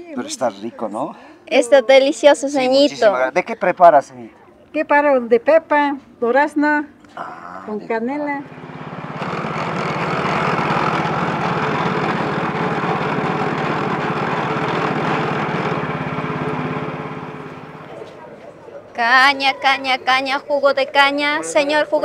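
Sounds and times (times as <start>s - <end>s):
small engine running: 8.4s - 18.5s.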